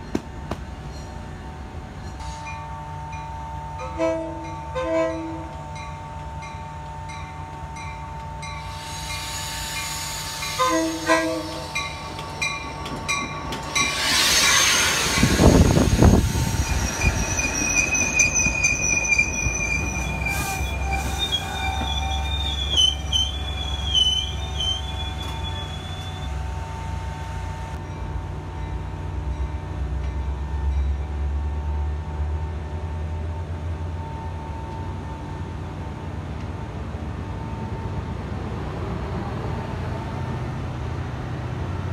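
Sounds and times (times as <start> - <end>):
train rumble: 0.0 - 41.9
train bell dinging: 0.8 - 14.1
train horn blast: 3.8 - 5.7, 10.5 - 11.8, 25.9 - 27.8.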